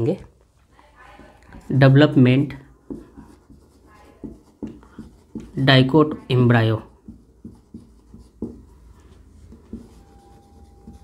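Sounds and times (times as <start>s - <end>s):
pen scratching while writing: 2.9s - 11.0s
faint steady tone: 9.8s - 11.0s.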